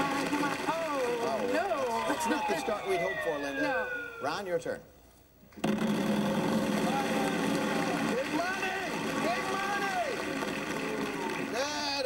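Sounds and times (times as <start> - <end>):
voices calling out: 1.6 - 4.5.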